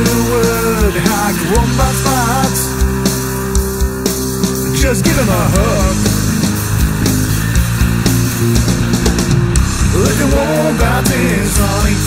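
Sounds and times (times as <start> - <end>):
person singing: 0.0 - 2.8, 4.7 - 6.2, 9.8 - 12.0
drum hits: 0.0 - 12.0
held low bass notes: 0.0 - 12.0.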